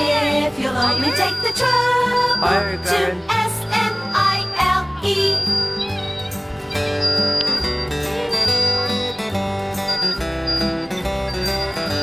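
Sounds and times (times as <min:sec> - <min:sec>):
plucked acoustic guitar: 0:00.0 - 0:12.0
steady bass line: 0:00.0 - 0:12.0.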